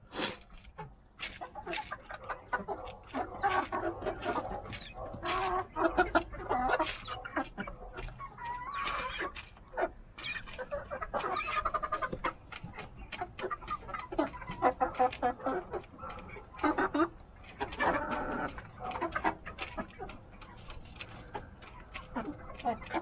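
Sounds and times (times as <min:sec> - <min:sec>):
chickens clucking: 0:00.0 - 0:23.0
chickens pecking ticks: 0:00.0 - 0:23.0.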